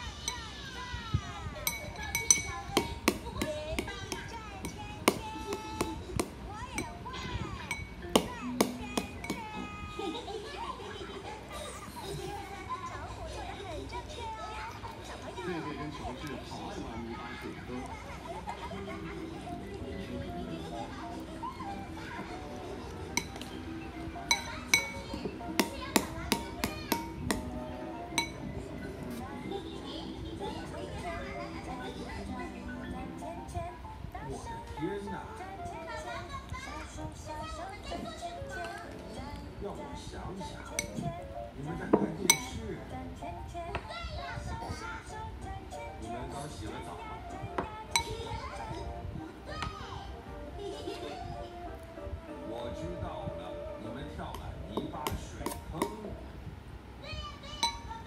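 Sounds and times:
metal spoon clinking ceramic bowl: 1.6s - 3.9s, 7.7s - 9.4s, 23.2s - 23.6s, 24.3s - 27.5s, 28.1s - 28.5s, 40.8s - 41.0s, 42.3s - 42.6s, 57.6s - 58.0s.

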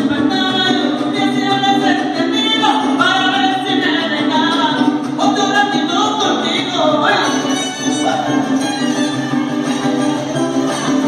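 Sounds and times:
guitar strumming: 0.0s - 11.0s
person singing: 0.0s - 11.0s
violin melody: 7.2s - 11.0s.

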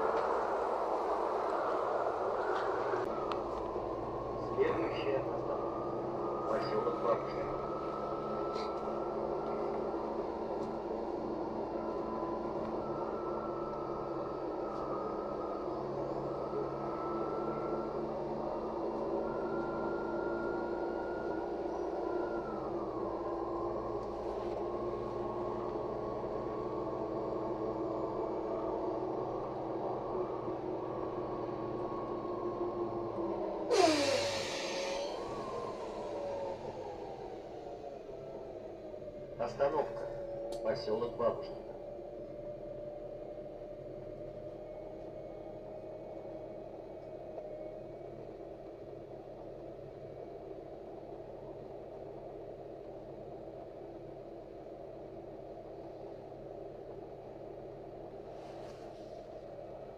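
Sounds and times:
bus drivetrain whine: 0.0s - 59.9s
low engine drone: 0.0s - 59.9s
air hissing burst: 33.7s - 35.2s.

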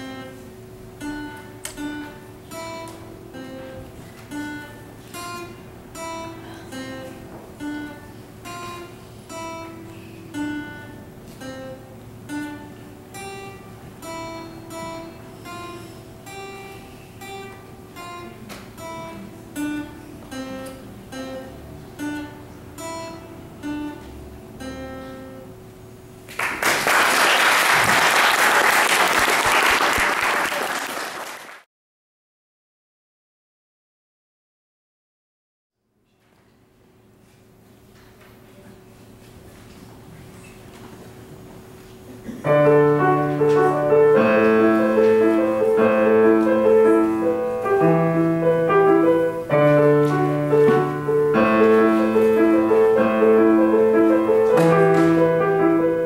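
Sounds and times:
acoustic guitar picking notes: 0.0s - 26.2s, 41.2s - 56.0s
audience applause: 26.3s - 31.7s.

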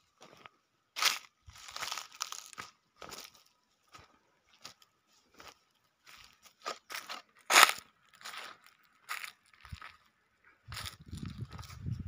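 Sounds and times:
footsteps crunching on dry leaves: 1.0s - 10.0s, 10.7s - 12.0s.

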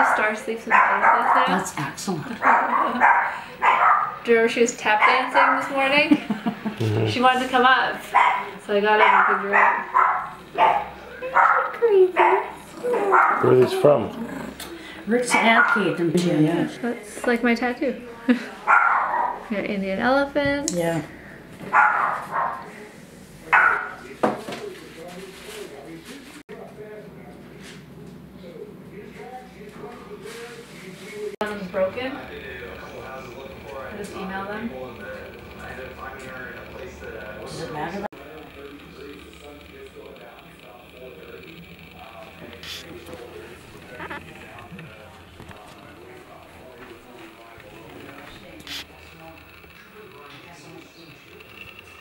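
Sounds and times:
dog barking: 0.0s - 1.7s, 2.4s - 4.2s, 4.9s - 5.8s, 8.1s - 13.6s, 15.3s - 16.0s, 18.6s - 19.5s, 21.7s - 22.7s, 23.5s - 24.1s
faint voices murmuring: 0.0s - 52.0s.

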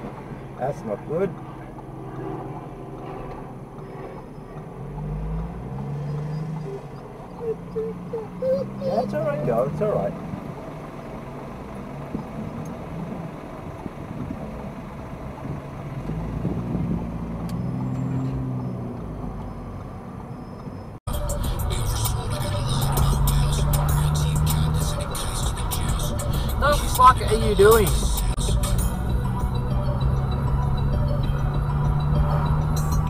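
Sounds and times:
car engine hum: 0.0s - 33.0s
road and wind noise: 0.0s - 33.0s
traffic passing: 0.0s - 33.0s.

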